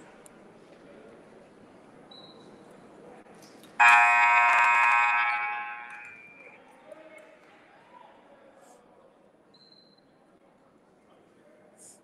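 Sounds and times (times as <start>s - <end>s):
scoreboard horn buzzing: 3.8s - 6.1s.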